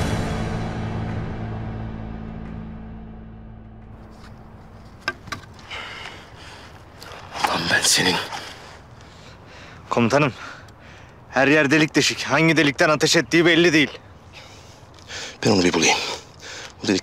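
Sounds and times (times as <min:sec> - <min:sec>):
low film score tones: 0:00.0 - 0:05.1.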